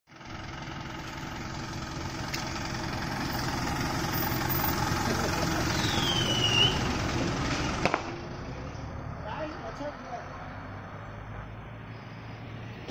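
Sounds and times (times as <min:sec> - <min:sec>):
minibus engine and tyres passing: 0:00.1 - 0:12.9
short falling squeal: 0:05.7 - 0:06.9.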